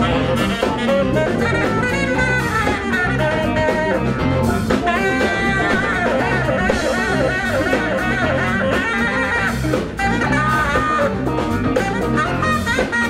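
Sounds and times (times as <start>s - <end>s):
live band playing: 0.0s - 13.0s
saxophone lead: 0.0s - 13.0s.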